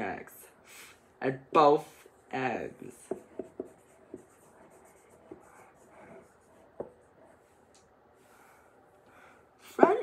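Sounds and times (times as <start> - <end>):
marker writing on whiteboard: 2.0 - 7.7.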